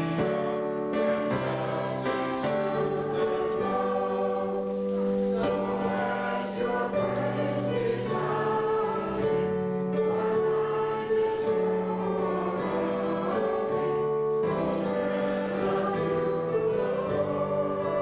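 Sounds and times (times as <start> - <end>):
group singing a slow hymn: 0.0 - 18.0.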